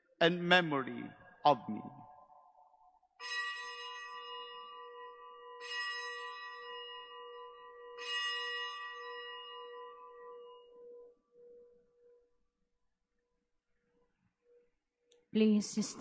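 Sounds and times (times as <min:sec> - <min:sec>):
bell ringing: 0:03.2 - 0:11.6.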